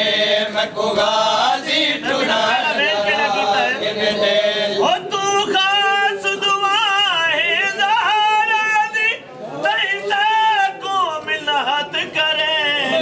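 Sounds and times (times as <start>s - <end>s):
men chanting a mournful lament: 0.0s - 13.0s.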